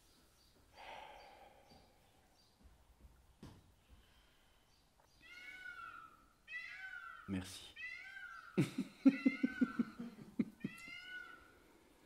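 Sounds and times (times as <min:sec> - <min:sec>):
cat meowing: 0:05.2 - 0:10.0, 0:10.6 - 0:11.5
person laughing: 0:08.6 - 0:11.0.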